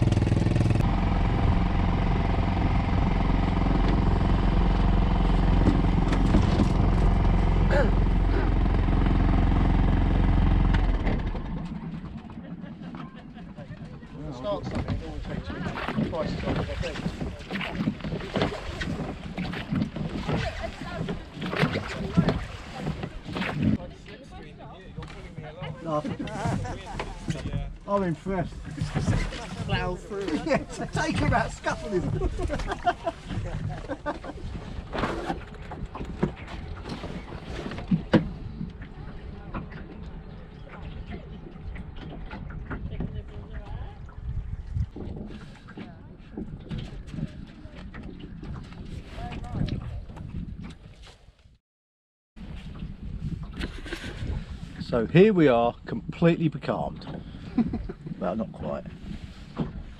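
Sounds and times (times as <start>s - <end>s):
water against hull: 0.0s - 51.6s, 52.4s - 59.9s
wind rumbling on microphone: 24.9s - 51.6s, 52.4s - 56.2s, 56.9s - 59.9s.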